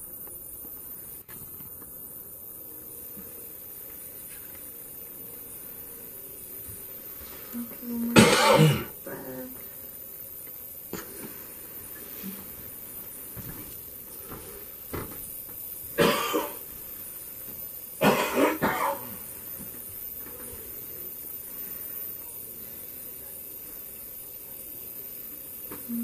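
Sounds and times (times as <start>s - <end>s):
person coughing: 8.2s - 9.4s, 16.0s - 16.6s, 18.0s - 19.1s.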